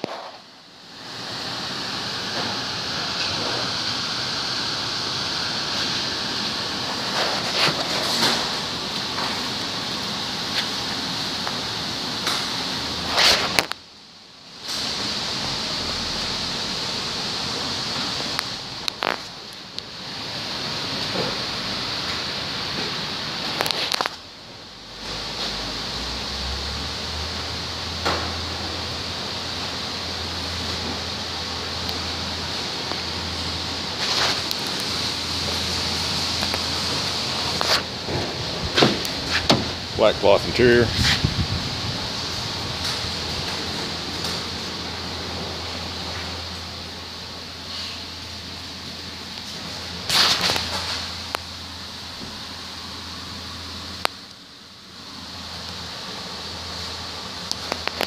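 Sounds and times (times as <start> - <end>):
steady background hiss: 0.0 - 58.0.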